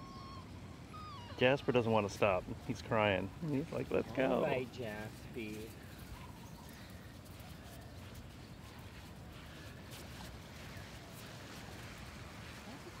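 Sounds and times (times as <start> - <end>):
dog whining: 0.0 - 1.8.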